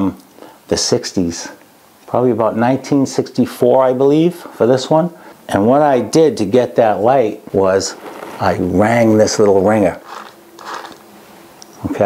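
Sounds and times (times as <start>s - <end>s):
field phone generator whirring: 3.4s - 12.0s.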